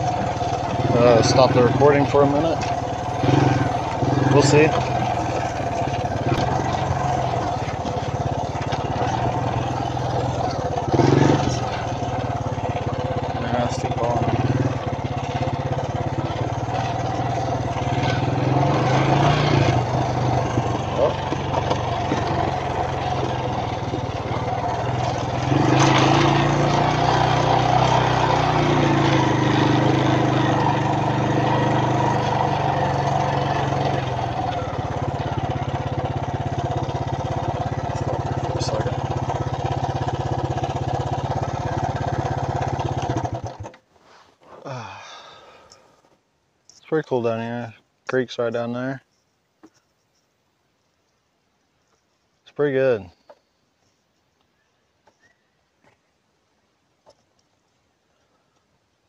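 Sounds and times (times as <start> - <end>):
quad bike engine running: 0.0 - 43.8.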